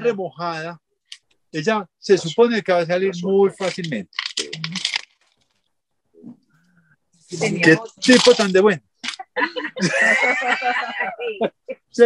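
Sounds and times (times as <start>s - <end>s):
plastic plant pot crackling: 8.0s - 8.6s.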